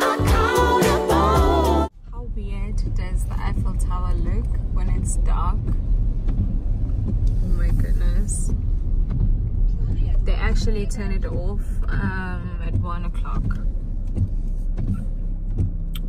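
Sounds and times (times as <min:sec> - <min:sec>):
car cabin rumble: 0:00.2 - 0:16.0.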